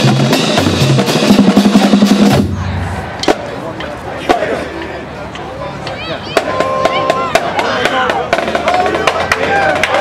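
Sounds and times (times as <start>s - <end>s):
people shouting and whooping: 5.9s - 10.0s.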